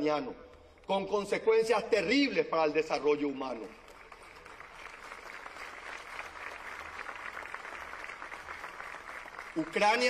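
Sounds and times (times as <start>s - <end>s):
crowd applauding: 3.7s - 10.0s.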